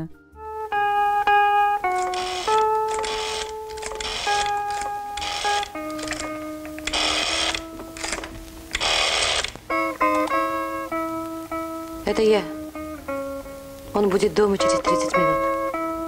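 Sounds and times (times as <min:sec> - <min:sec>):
plucked guitar music: 0:00.0 - 0:16.0
rotary dial whirring: 0:01.9 - 0:09.6.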